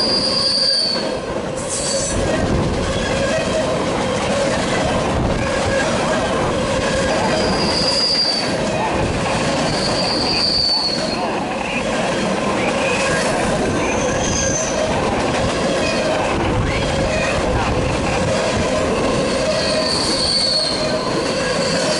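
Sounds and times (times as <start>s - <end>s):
freight train wheels rumbling: 0.0s - 21.9s
wheel squeals: 7.0s - 8.6s, 9.5s - 11.8s, 13.8s - 14.8s, 19.3s - 21.9s.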